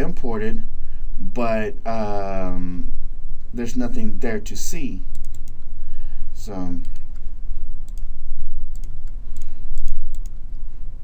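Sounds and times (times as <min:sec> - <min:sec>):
steady low hum: 0:00.0 - 0:11.0
sharp computer clicks: 0:05.1 - 0:05.7, 0:06.8 - 0:10.6.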